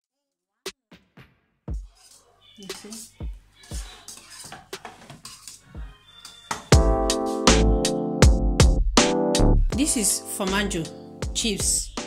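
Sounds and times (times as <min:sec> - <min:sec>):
wooden spoon scraping pot: 0:03.7 - 0:05.7.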